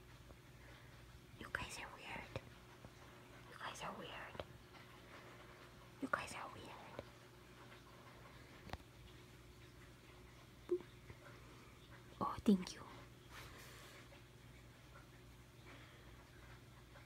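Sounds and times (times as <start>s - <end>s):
person whispering: 1.4s - 2.4s, 3.5s - 4.4s, 6.0s - 7.0s, 12.2s - 13.0s.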